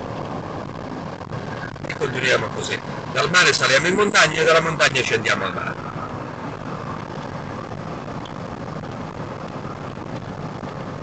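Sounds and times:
car interior road and engine noise: 0:00.0 - 0:11.0.

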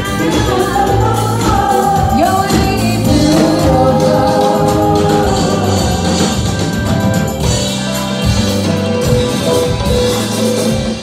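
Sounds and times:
voices singing: 0:00.0 - 0:06.8
bass line: 0:00.0 - 0:11.0
live band playing: 0:00.0 - 0:11.0.

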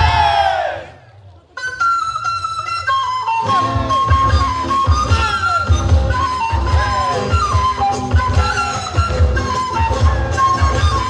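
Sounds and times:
group of voices shouting: 0:00.0 - 0:01.0
flute melody music: 0:01.4 - 0:11.0.

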